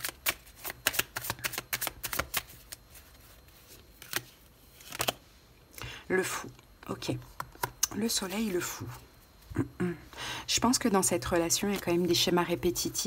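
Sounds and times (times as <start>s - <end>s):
cards being shuffled: 0.0s - 5.2s.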